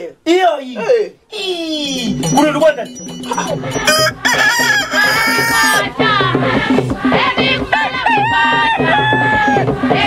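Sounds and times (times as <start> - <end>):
rhythmic music: 1.8 - 10.0
rooster crowing: 3.8 - 5.9, 7.7 - 9.6.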